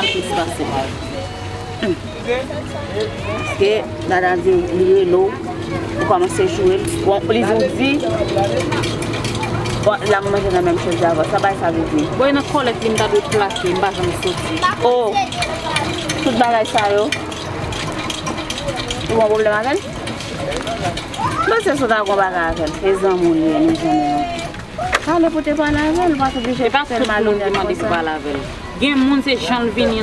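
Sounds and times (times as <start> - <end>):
low outdoor background noise: 0.0 - 30.0
woman talking: 3.4 - 8.9, 9.8 - 15.2, 16.2 - 17.2, 19.0 - 19.9, 21.4 - 30.0.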